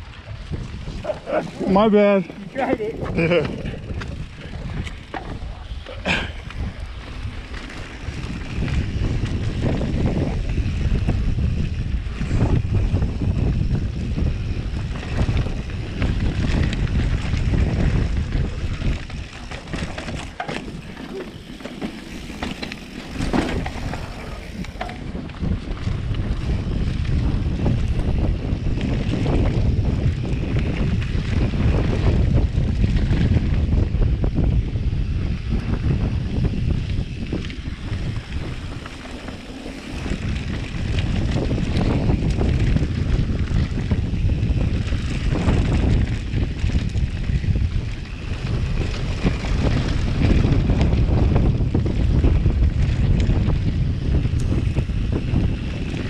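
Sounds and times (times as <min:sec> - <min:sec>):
tyres rolling on dirt trail: 0:00.0 - 0:56.0
wind buffeting microphone: 0:00.0 - 0:56.0
bike knocks and rattles: 0:02.2 - 0:56.0.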